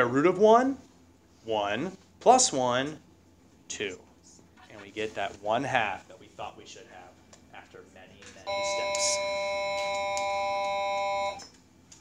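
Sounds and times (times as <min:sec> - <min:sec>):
electronic signal tone chord: 0:08.5 - 0:11.4.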